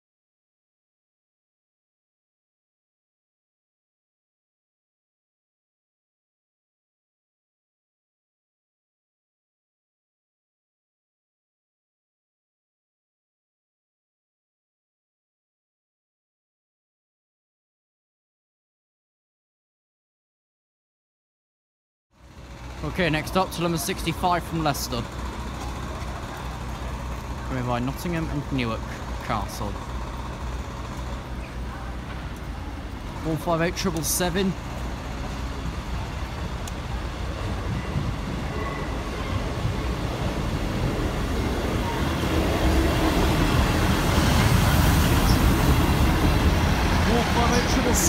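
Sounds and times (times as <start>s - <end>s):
low engine rumble: 22.2s - 48.0s.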